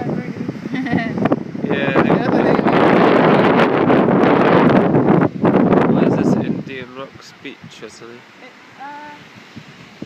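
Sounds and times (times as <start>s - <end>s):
wind blowing across microphone: 0.0s - 10.0s.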